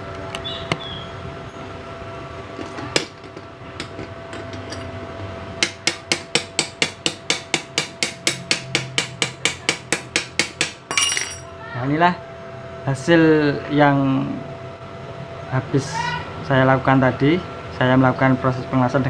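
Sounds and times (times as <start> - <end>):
hammer striking steel: 5.6 - 11.4.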